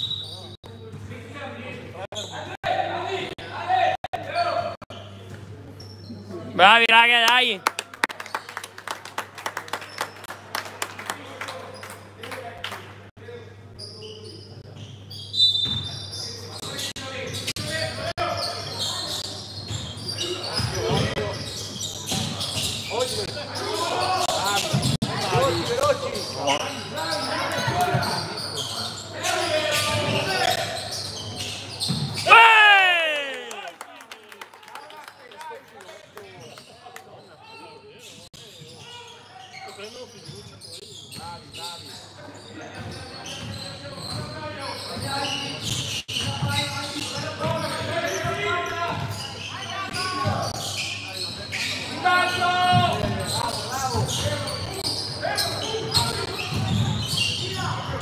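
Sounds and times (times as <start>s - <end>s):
people calling out: 32.2s - 33.8s.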